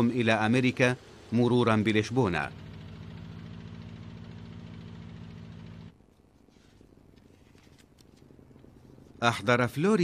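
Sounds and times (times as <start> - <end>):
propeller plane engines droning: 0.0 - 10.0.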